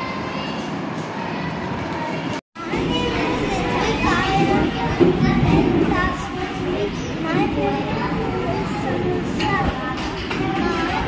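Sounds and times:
children's voices and chatter: 0:00.0 - 0:11.0.

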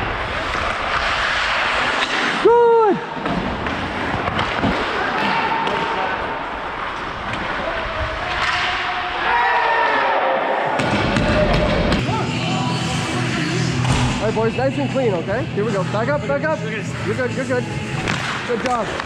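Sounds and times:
skates and sticks on ice: 0:00.0 - 0:09.1, 0:18.0 - 0:19.0.

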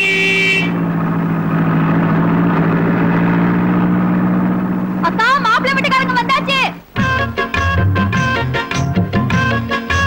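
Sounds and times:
car engine running at low revs: 0:00.0 - 0:07.0.

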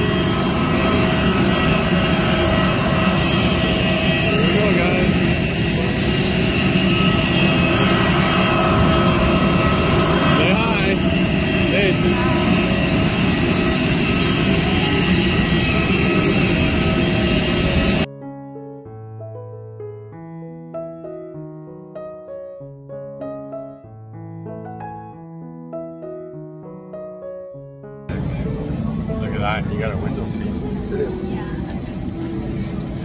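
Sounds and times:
jet airliner engine whine and roar: 0:00.0 - 0:18.1, 0:28.1 - 0:33.0
faint voices: 0:00.4 - 0:18.0, 0:28.1 - 0:33.0.

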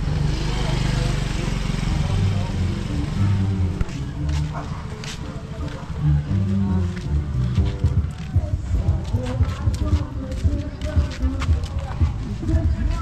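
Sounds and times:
people talking: 0:00.0 - 0:13.0
vehicle engine running: 0:00.0 - 0:13.0.

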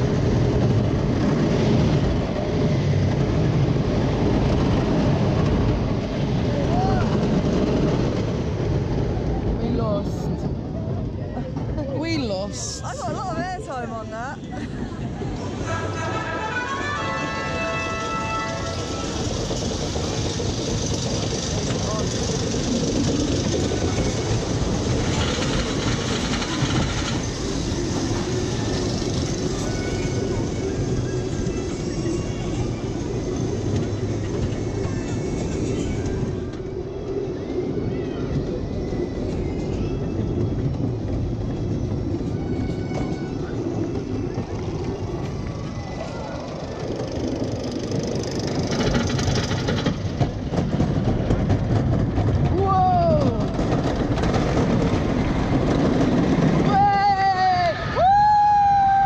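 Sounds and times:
roller coaster train rattling: 0:00.0 - 0:59.0.

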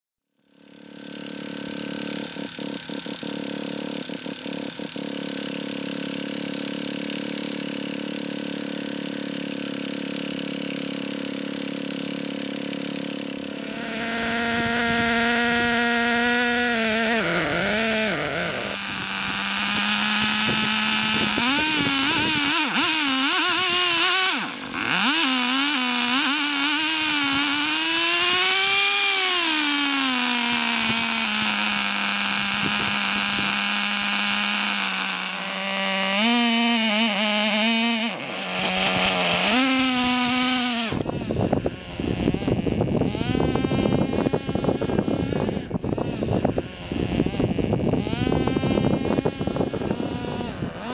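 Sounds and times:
small two-stroke engine revving: 0:00.3 - 0:50.9.

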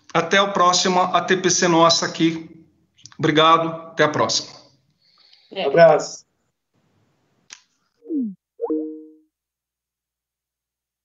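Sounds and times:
falling notification tone: 0:08.0 - 0:09.2.

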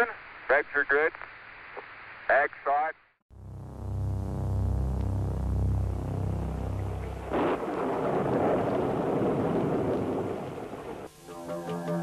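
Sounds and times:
rumbling roar of bombing: 0:03.3 - 0:11.1.

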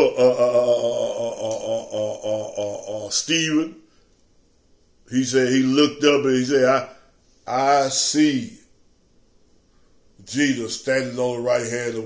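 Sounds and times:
man chanting low drone: 0:00.0 - 0:03.8.

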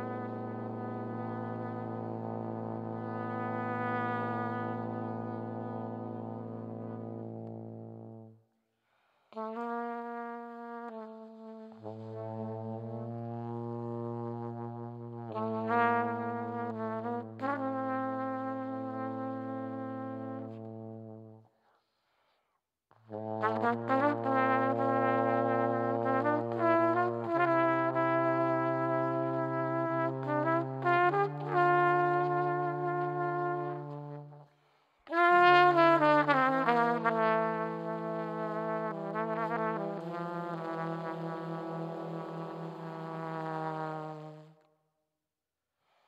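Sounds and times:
trombone low notes: 0:00.0 - 0:08.3, 0:09.4 - 0:21.4, 0:23.1 - 0:34.4, 0:35.1 - 0:44.5
trumpet long notes: 0:00.0 - 0:08.3, 0:09.4 - 0:21.4, 0:23.1 - 0:34.5, 0:35.1 - 0:44.7.

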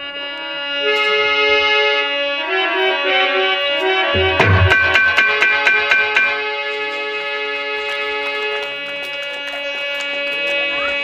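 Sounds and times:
harmonium sustained chord: 0:00.0 - 0:08.8.

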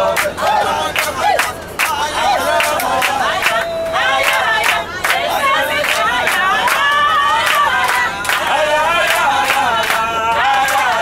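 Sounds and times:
group singing and shouting: 0:00.0 - 0:11.0.

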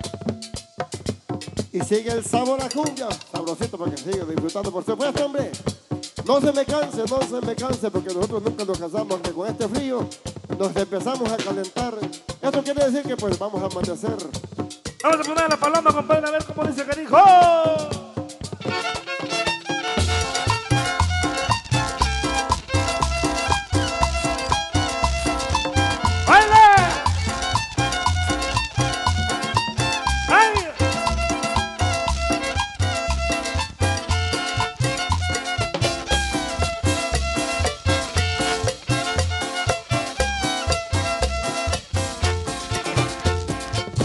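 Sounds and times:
guitar: 0:00.0 - 0:03.5, 0:14.9 - 0:44.0
drums: 0:00.0 - 0:44.0
loud sliding notes: 0:18.0 - 0:44.0
violin melody: 0:18.6 - 0:44.0
upright bass pulsing: 0:19.9 - 0:44.0.

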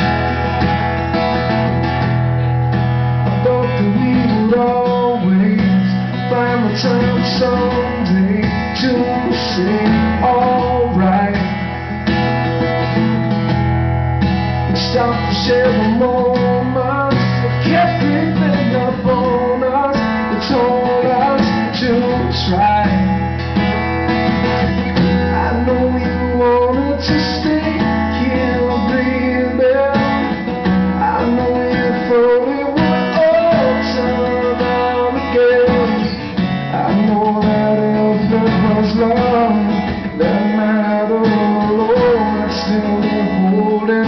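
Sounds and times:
electric guitar lead: 0:00.0 - 0:44.0
live band playing pop-rock: 0:00.0 - 0:44.0
steady bass line: 0:00.0 - 0:44.0.

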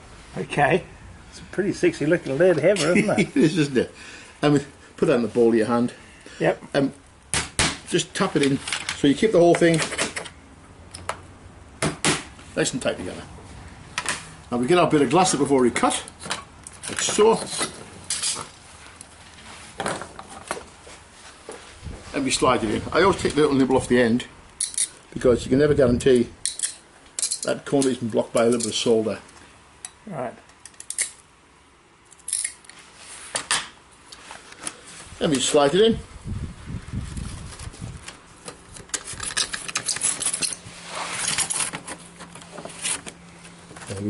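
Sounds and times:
glass scraping against lead: 0:16.8 - 0:18.6, 0:38.9 - 0:41.8
short scrape: 0:40.6 - 0:41.7.

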